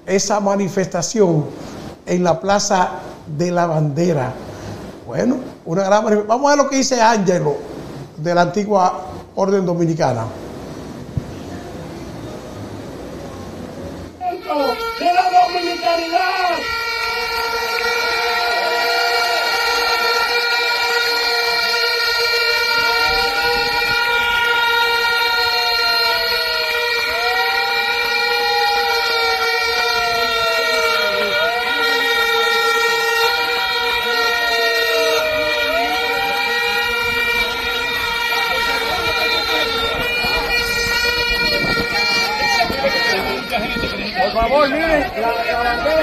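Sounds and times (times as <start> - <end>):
steady blaring horn: 14.1 - 46.0
siren-like wail: 14.2 - 46.0.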